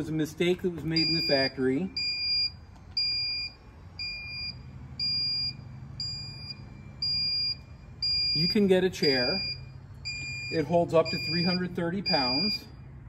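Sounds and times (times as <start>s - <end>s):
low motor hum: 0.0s - 13.0s
high electronic beeps: 0.9s - 12.7s.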